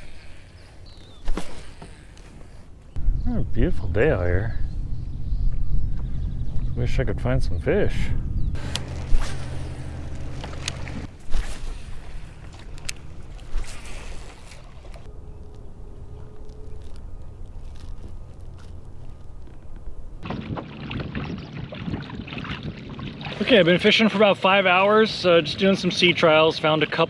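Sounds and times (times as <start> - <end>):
water rushing along kayak hull: 8.6 - 11.3.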